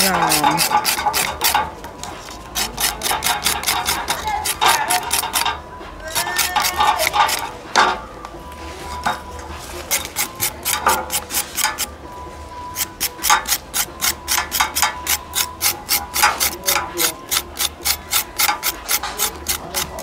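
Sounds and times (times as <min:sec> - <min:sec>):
knife scraping charred skin: 0:00.0 - 0:07.6, 0:09.6 - 0:12.0, 0:12.6 - 0:20.0.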